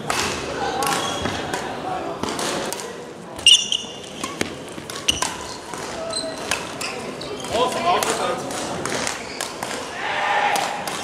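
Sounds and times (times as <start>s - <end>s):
shoe squeaking on court floor: 0.9s - 1.5s, 3.4s - 7.8s, 9.0s - 9.6s.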